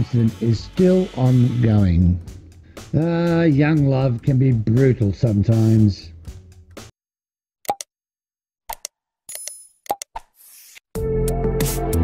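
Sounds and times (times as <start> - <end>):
short clicks and pops: 7.6 - 7.9, 8.7 - 10.3.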